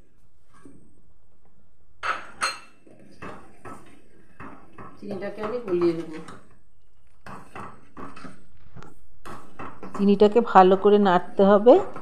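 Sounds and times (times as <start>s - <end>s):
metal spoon scraping a pan: 3.3s - 8.5s.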